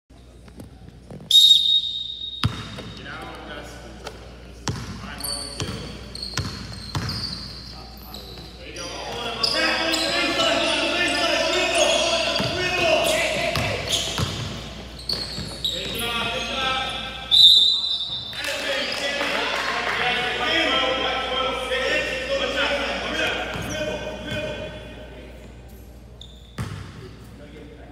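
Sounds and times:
referee's whistle blasts: 1.3s - 2.8s, 15.2s - 18.4s
people calling out: 8.8s - 14.4s.

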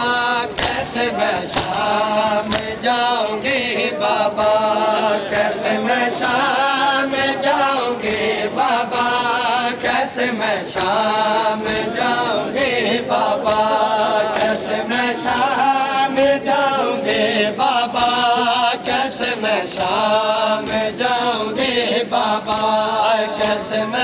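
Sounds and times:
chest beating in rhythm: 0.0s - 24.0s
men chanting a lament: 0.0s - 24.0s.

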